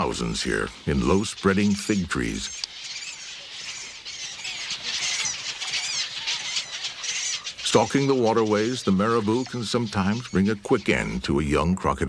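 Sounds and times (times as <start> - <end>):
bird colony high squealing calls: 0.0 - 12.0.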